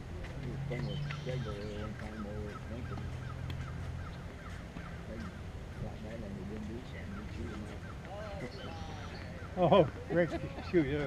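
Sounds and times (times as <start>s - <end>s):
steady low hum: 0.0s - 10.6s.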